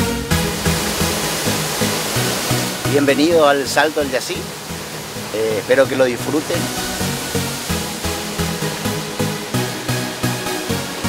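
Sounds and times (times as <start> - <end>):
rushing waterfall: 0.0 - 11.0.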